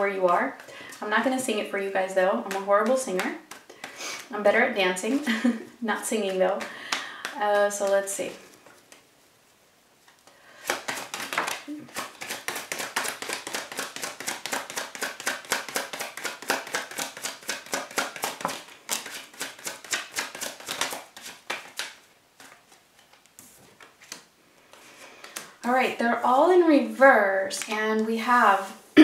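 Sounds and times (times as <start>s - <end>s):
cards being shuffled: 2.5s - 4.0s, 6.1s - 9.1s, 10.0s - 25.5s.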